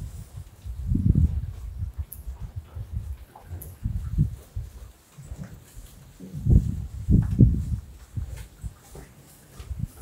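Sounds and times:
cattle thuds and rustling: 0.0s - 10.0s.

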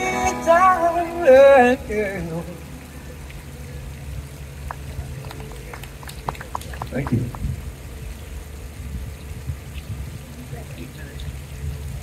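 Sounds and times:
city traffic hum: 0.0s - 12.0s
scattered clapping: 4.6s - 7.5s.

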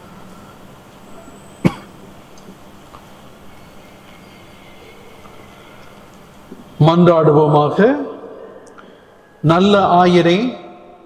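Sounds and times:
short cough: 1.6s - 2.0s.

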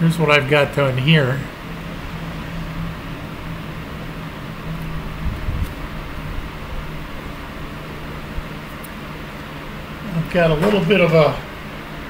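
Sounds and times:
electric fan humming: 0.0s - 12.0s.

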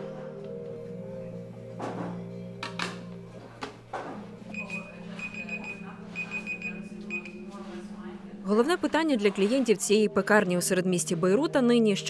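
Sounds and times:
electronic timer beeping: 4.5s - 7.4s.

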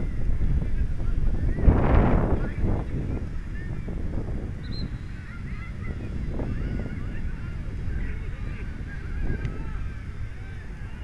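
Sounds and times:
steady low rumble: 0.0s - 11.0s
flock of birds calling: 4.6s - 11.0s.

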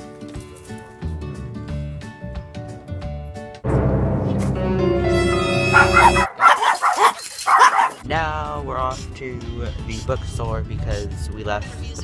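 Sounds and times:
music: 0.0s - 6.5s, 8.0s - 12.0s
small dog yapping: 5.7s - 8.0s.

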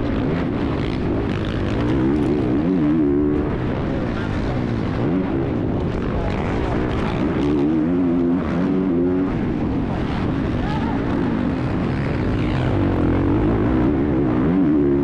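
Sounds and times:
motocross bike engine revving: 0.0s - 10.6s, 11.3s - 15.0s
wind noise: 0.0s - 15.0s.

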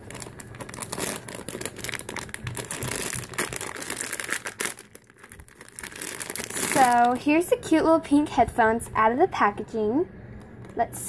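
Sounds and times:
plastic bag crinkling: 0.0s - 7.3s.

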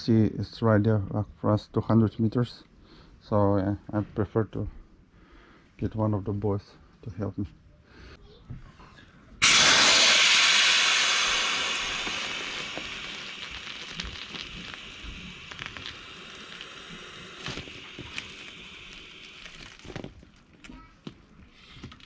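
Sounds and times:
air hissing out of valve: 9.4s - 20.2s.

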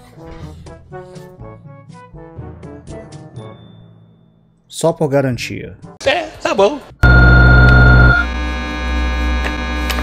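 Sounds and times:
electronic buzzing drone: 7.0s - 10.0s.

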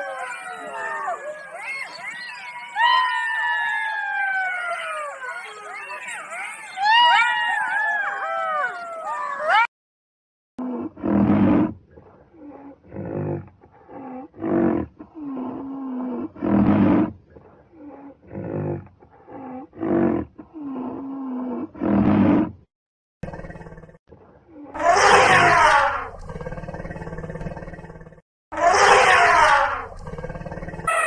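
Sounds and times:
fox yelping: 0.0s - 9.7s
large animal deep rough calls: 23.2s - 24.0s, 24.8s - 31.0s.

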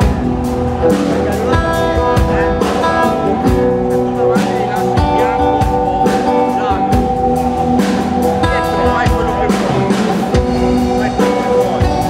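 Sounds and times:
electric guitar lines: 0.0s - 12.0s
steady drum beat: 0.0s - 12.0s
sustained keyboard chords: 0.0s - 12.0s.

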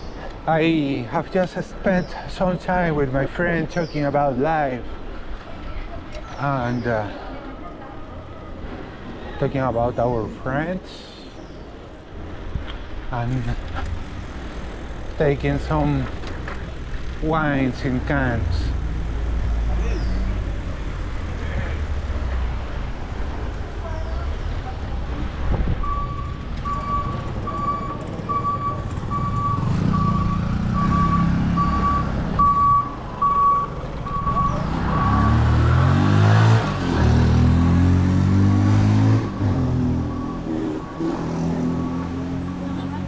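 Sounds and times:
street traffic: 0.0s - 43.0s
motor vehicle passing: 13.5s - 43.0s
electronic beeper beeping: 25.8s - 35.5s.

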